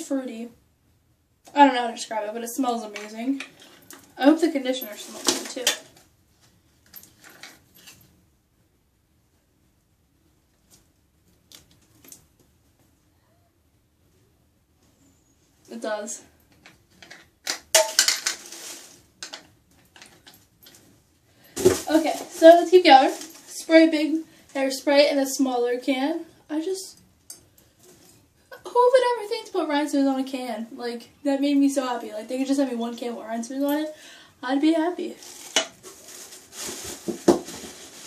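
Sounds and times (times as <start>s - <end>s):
containers rummaged in a box: 17.0s - 20.3s, 21.5s - 23.6s, 35.2s - 38.0s
plastic bottles knocking and clattering: 17.0s - 20.3s, 21.5s - 22.6s, 35.3s - 38.0s.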